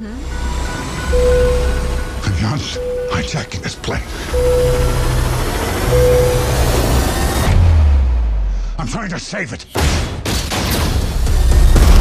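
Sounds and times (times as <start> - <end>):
pulsing low bass: 0.0 - 8.7
rising noise swell: 0.2 - 8.5.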